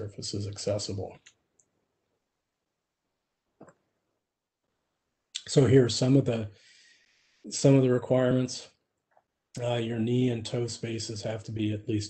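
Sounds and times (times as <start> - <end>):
man talking: 0.0 - 1.3, 5.4 - 6.6, 7.5 - 8.8, 9.6 - 12.0.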